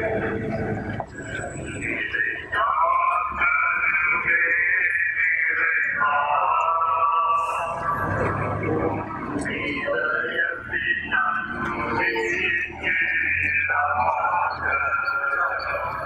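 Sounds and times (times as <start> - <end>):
voices singing a hymn: 0.0 - 16.0.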